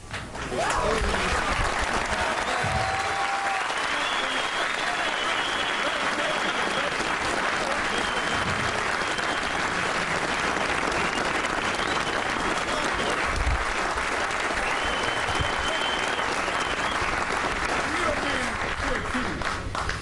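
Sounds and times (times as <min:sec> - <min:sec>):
crowd applauding: 0:00.0 - 0:20.0.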